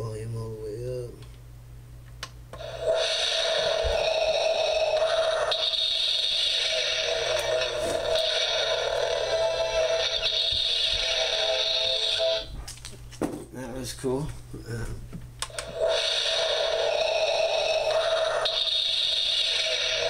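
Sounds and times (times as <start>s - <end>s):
tinny alarm clock radio speaker: 2.6s - 12.6s, 15.5s - 20.0s.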